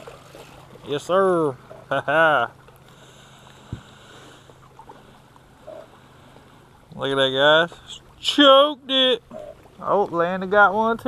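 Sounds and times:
water lapping against boat: 0.0s - 11.0s.

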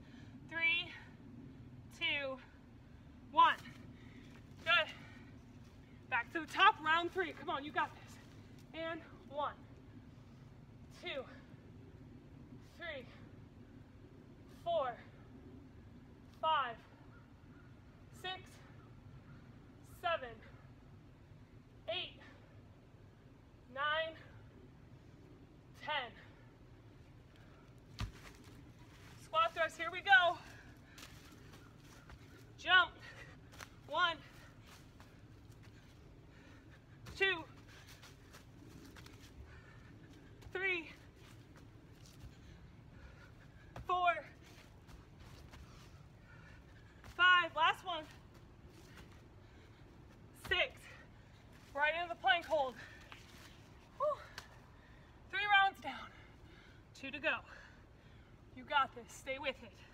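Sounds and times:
leaves rustling: 27.4s - 54.9s
feet landing on dry leaves: 27.9s - 32.5s.

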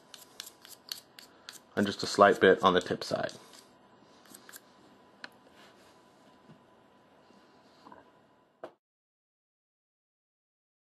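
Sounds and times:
chalk scratching on wooden peg: 0.0s - 4.6s.

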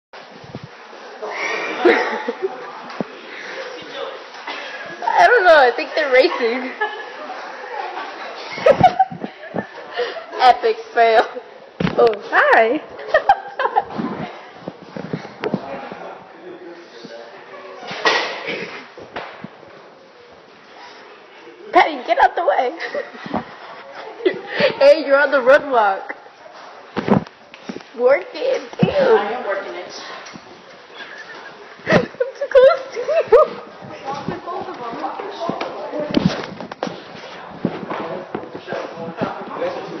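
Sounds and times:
footsteps: 0.2s - 1.2s, 13.0s - 16.2s, 23.0s - 25.3s, 26.4s - 40.0s
people talking and laughing: 0.3s - 40.0s.

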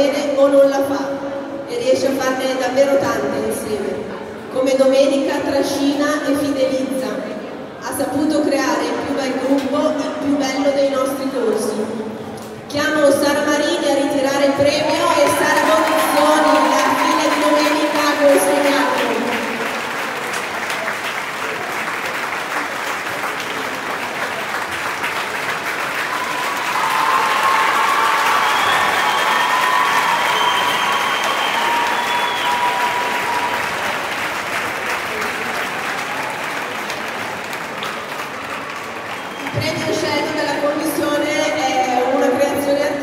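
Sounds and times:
audience applauding: 14.6s - 40.0s.

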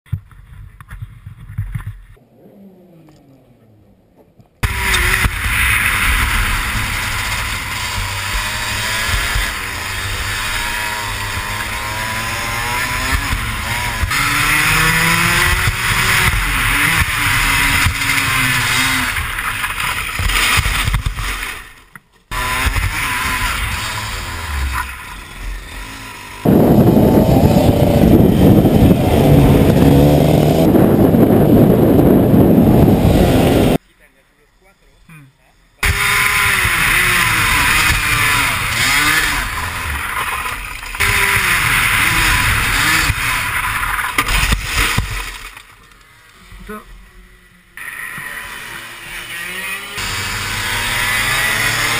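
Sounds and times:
kart engine revving: 2.2s - 21.7s, 22.3s - 33.8s, 35.8s - 45.5s, 47.7s - 51.9s
loud rushing noise: 26.4s - 33.8s.

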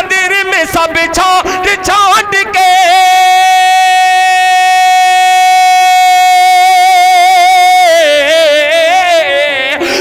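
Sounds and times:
man singing long high note: 0.0s - 10.0s.

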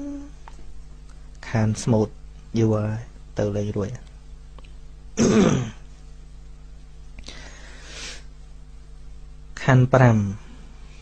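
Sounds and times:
man clearing his throat: 5.2s - 5.9s.

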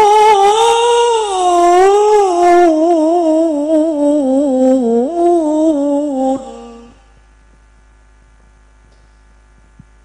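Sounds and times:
man reciting in long melismatic note: 0.0s - 7.1s.

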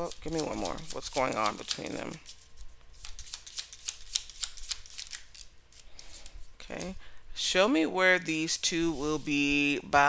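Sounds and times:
playing cards being shuffled: 0.0s - 7.0s.

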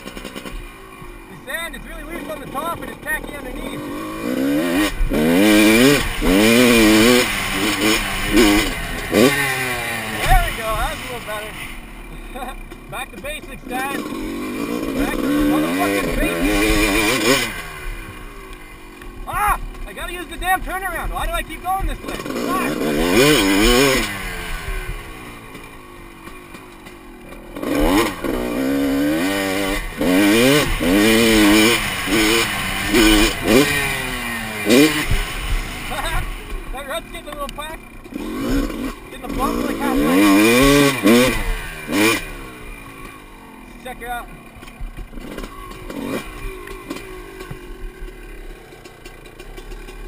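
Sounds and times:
dirt bike engine revving: 0.0s - 50.0s.

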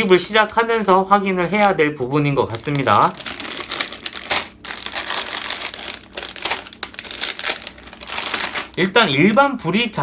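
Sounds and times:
plastic bags crinkling: 0.0s - 9.7s.

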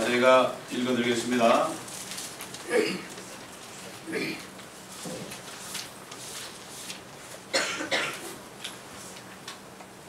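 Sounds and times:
faint steady hum: 0.0s - 10.0s
man coughing: 2.7s - 3.1s, 7.5s - 8.3s.

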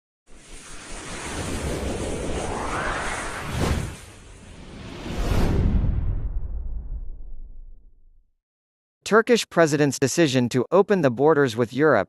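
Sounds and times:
rushing noise effect: 0.3s - 7.8s.

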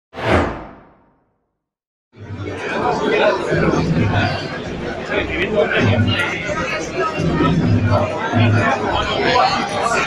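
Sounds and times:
deep whoosh: 0.2s - 1.1s.

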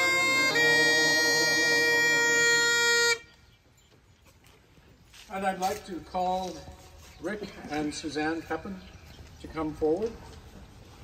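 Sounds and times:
bagpipes playing: 0.0s - 3.4s.

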